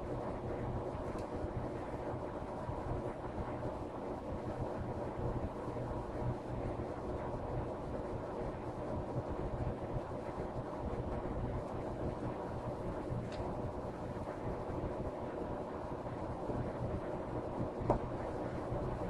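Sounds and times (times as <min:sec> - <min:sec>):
low background rumble and hiss: 0:00.0 - 0:19.0.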